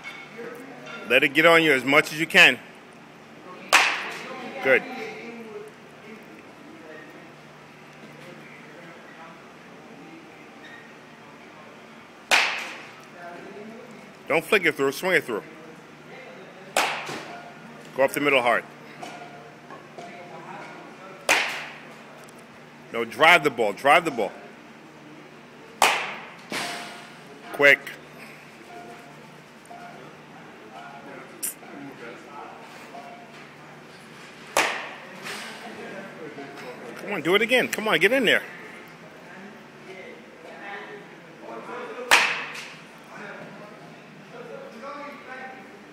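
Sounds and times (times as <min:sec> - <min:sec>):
baseball bat hitting ball: 0:03.7 - 0:04.2, 0:12.3 - 0:12.8, 0:16.8 - 0:17.3, 0:21.3 - 0:21.8, 0:25.8 - 0:26.8, 0:34.5 - 0:35.0, 0:42.1 - 0:42.7.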